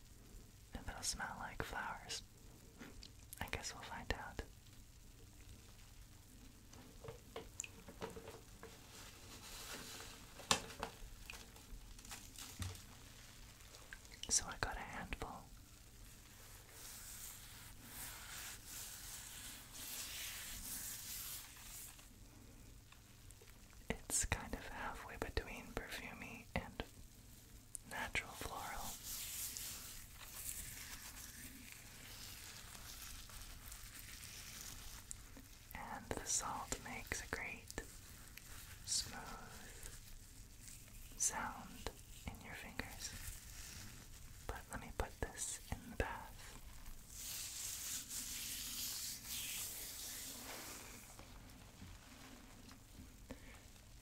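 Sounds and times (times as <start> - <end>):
salt crystals rubbed between fingers: 8.6 - 10.4, 11.5 - 22.5, 27.8 - 54.0.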